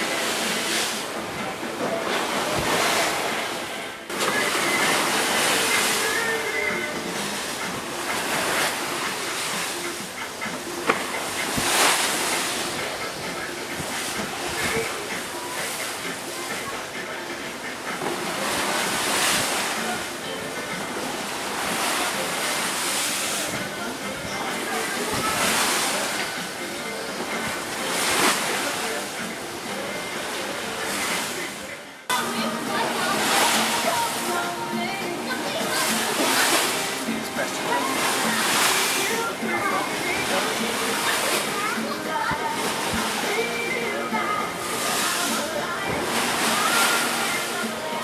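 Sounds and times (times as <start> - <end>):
boat wake churning: 0.0 - 48.0
rough sea washing against boat: 0.0 - 48.0.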